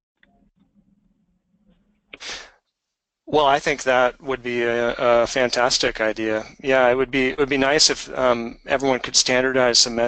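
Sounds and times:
sharp breath: 2.2 - 2.6
faint low hum: 3.3 - 10.0.

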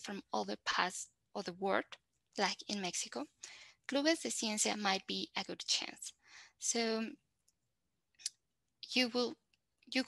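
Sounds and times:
woman speaking: 0.0 - 7.2, 8.2 - 10.0.

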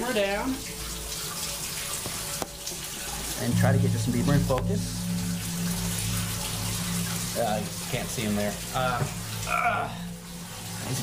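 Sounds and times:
water pouring into a tub: 0.0 - 11.0.

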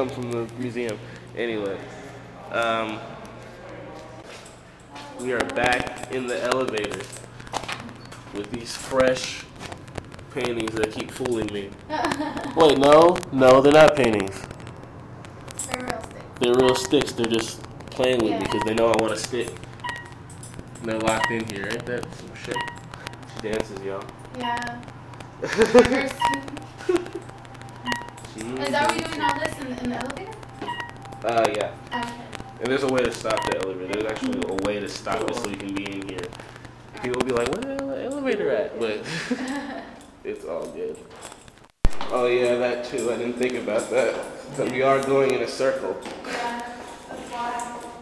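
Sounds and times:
elevator button beeps: 18.4 - 18.8, 19.8 - 20.1, 26.0 - 26.6, 27.8 - 31.0.

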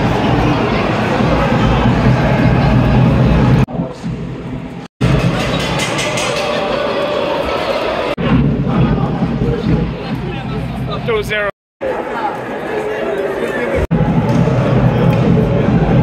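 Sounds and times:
arena crowd noise: 0.0 - 16.0.

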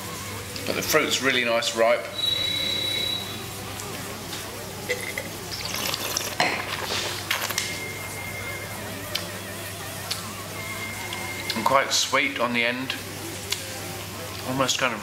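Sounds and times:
thin whistle: 2.1 - 3.4
person slurping wine: 4.9 - 7.6
wine glass knocking on table: 6.4 - 6.7.

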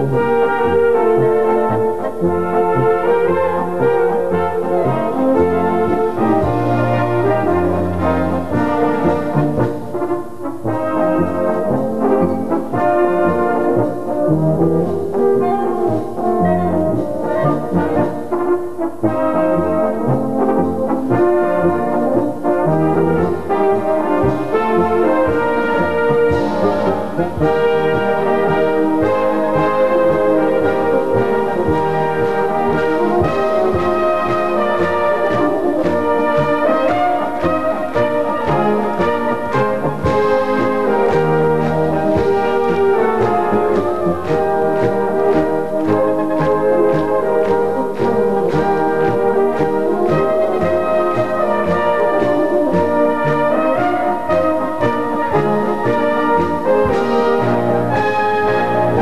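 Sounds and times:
brass band playing: 0.0 - 59.0.

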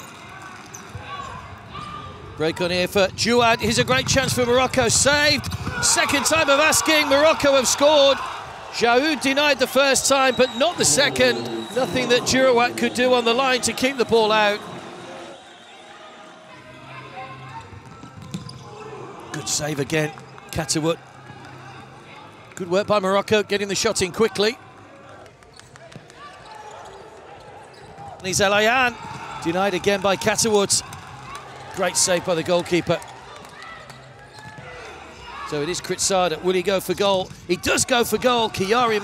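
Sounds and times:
court noise: 0.0 - 39.0
distant voices and crowd murmur: 0.0 - 39.0
distant shouting voices: 5.6 - 16.3.

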